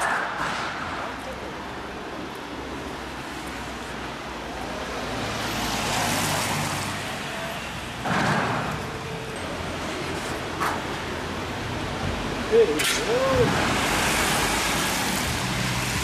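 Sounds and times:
vehicles driving past: 0:00.0 - 0:16.0.

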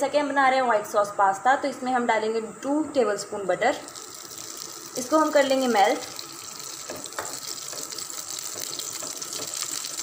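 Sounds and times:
butter sizzling in a pan: 0:03.9 - 0:10.0.

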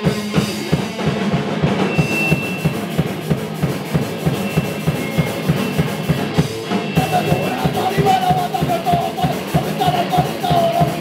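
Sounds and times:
fast driving drum beat: 0:00.0 - 0:11.0
punk band playing live: 0:00.0 - 0:11.0.

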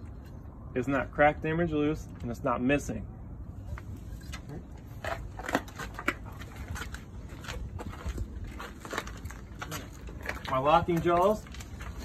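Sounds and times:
steady low rumble: 0:00.0 - 0:12.0
footsteps crunching on gravel: 0:04.9 - 0:12.0.

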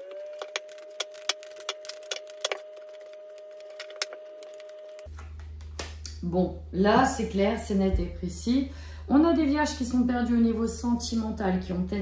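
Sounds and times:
cards clicking and snapping: 0:00.4 - 0:06.0.

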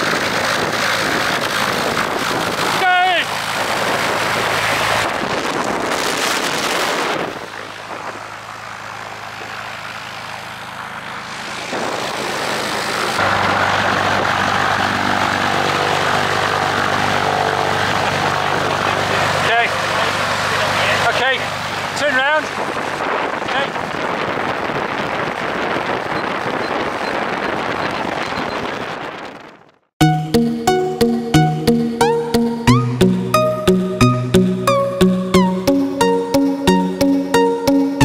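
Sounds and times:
wind noise on microphone: 0:00.0 - 0:09.6, 0:11.3 - 0:19.4, 0:21.6 - 0:29.9
propeller aircraft engine idling: 0:00.0 - 0:24.6.

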